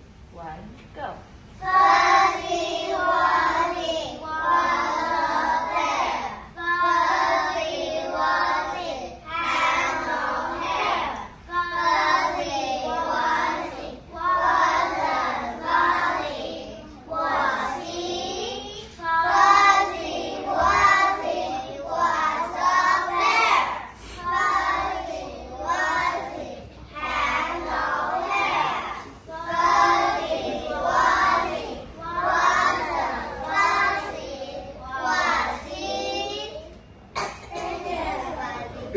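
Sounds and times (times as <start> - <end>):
children singing in unison: 1.5 - 36.6, 37.2 - 38.9.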